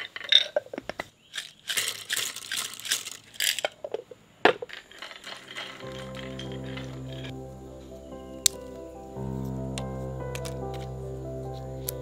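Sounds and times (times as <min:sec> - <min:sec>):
soft music: 0:05.2 - 0:12.0.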